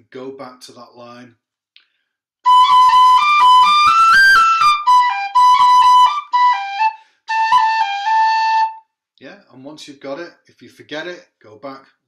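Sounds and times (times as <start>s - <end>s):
tin whistle melody: 2.4s - 8.8s.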